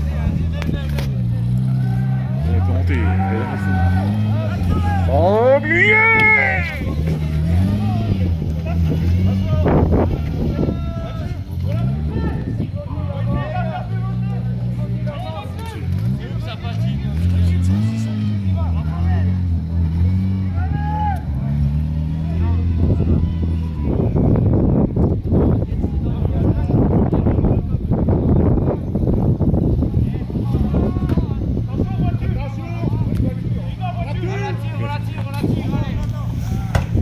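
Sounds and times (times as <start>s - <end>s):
rally car engine revving: 0.0s - 37.0s
voices shouting: 1.3s - 19.3s, 20.0s - 24.5s.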